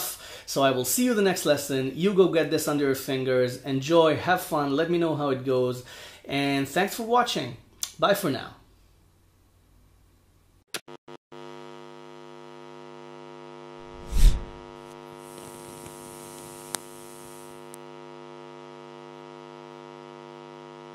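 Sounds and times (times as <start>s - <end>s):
steady electric buzz: 12.9s - 20.9s.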